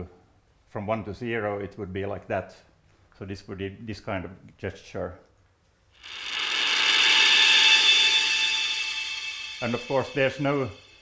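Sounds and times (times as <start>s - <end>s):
buzzy sustained synthesizer tone: 6.0s - 11.0s.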